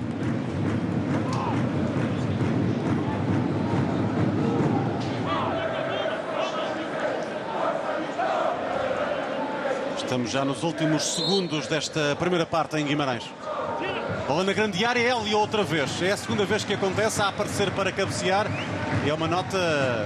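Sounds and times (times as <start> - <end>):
stadium crowd din: 0.0 - 20.0
crowd shouts and chanting: 1.2 - 20.0.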